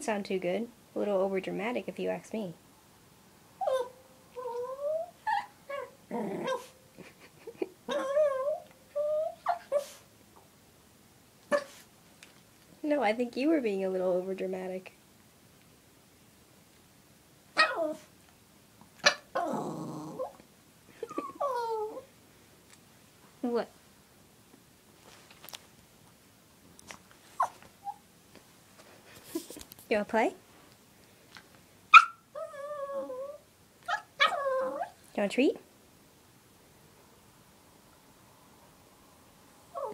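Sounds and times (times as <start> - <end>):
puppy yip: 3.6 - 6.7, 17.6 - 18.0, 27.4 - 28.0, 31.9 - 35.0
small dog whining: 3.6 - 6.8, 7.9 - 10.0, 17.6 - 18.1, 19.0 - 20.4, 21.0 - 22.1, 27.3 - 28.0, 31.9 - 35.0.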